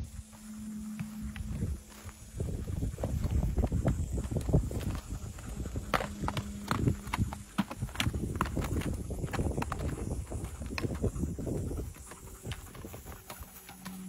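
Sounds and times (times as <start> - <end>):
horse hoofbeats on rocky ground: 0.0 - 14.0.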